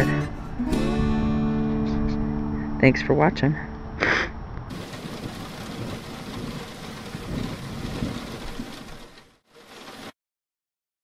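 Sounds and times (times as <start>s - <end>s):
low rolling thunder: 4.7s - 9.2s
heavy rain: 4.7s - 10.2s.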